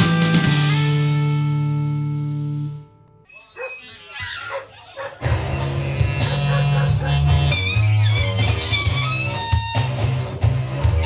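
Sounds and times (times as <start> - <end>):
music: 0.0 - 3.3, 5.2 - 11.0
dog-like calls with bending pitch: 3.3 - 9.9.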